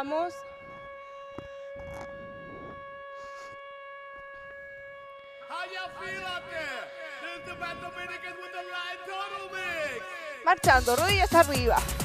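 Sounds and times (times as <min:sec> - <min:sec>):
steady buzzy tone: 0:00.0 - 0:12.0.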